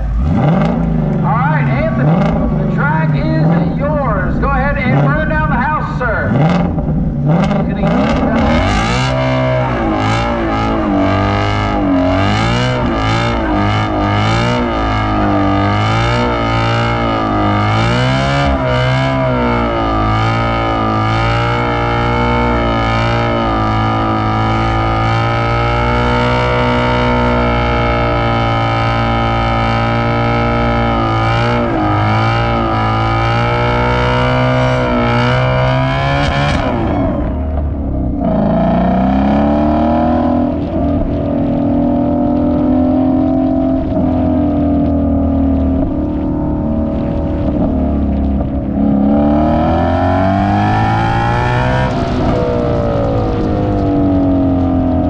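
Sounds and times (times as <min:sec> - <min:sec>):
car engine revving hard: 0:00.0 - 0:55.0
tires spinning: 0:00.0 - 0:55.0.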